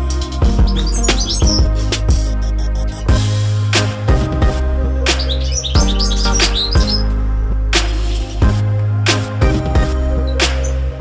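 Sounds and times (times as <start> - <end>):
background music with drums: 0.0 - 7.0, 7.8 - 11.0
bird twittering high chirps: 0.1 - 3.2, 5.1 - 7.2.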